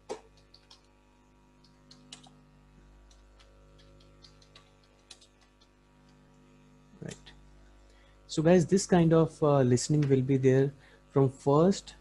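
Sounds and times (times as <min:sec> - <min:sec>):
computer keys clicking: 0:00.1 - 0:00.9, 0:01.6 - 0:02.4, 0:03.1 - 0:05.8.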